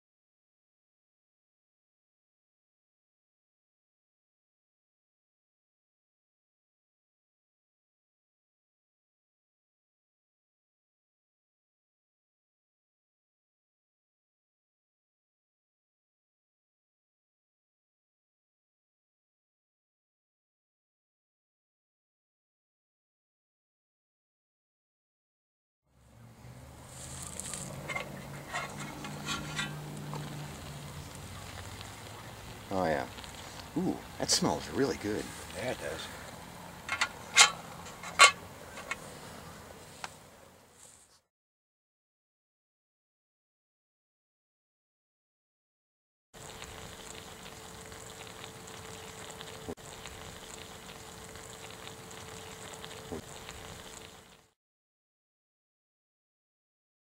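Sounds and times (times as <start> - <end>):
food sizzling in a pan: 26.8 - 36.5, 46.4 - 54.6
metal lid clinking against pan: 27.8 - 29.8, 36.9 - 39.0.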